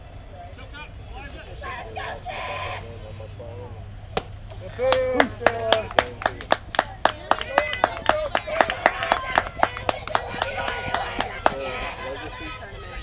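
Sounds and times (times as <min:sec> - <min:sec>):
people shouting: 0:01.2 - 0:03.0, 0:07.3 - 0:13.0
softball bat hitting ball: 0:04.1 - 0:04.7
people clapping: 0:04.2 - 0:12.5.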